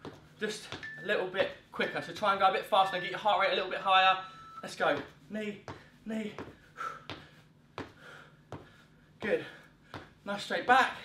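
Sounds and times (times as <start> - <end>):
footfalls on rubber floor: 0.0 - 1.5, 4.8 - 10.2.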